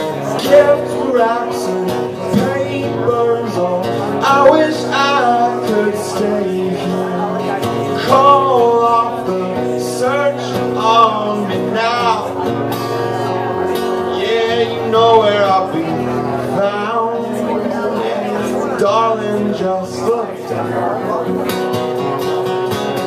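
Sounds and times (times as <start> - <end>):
man singing: 0.0 - 21.6
acoustic guitar chords: 0.0 - 23.0.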